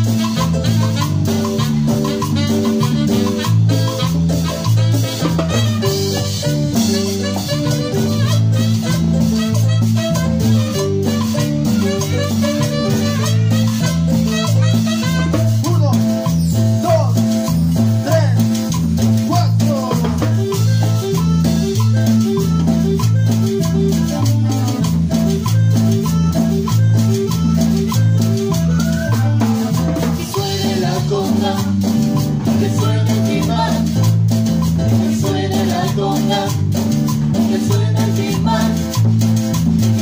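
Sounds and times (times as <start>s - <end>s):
drum kit: 0.0s - 40.0s
electric bass line: 0.0s - 40.0s
marimba-like melody: 0.0s - 40.0s.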